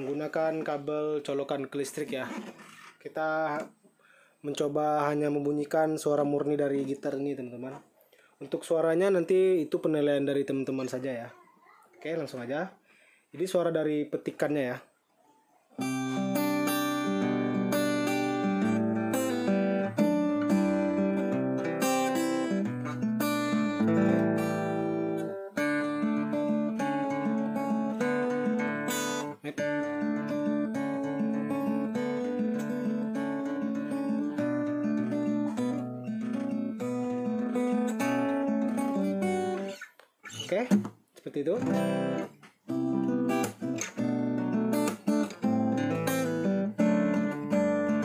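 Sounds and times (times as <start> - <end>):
acoustic guitar fingerpicked: 0.0 - 3.8, 15.8 - 48.0.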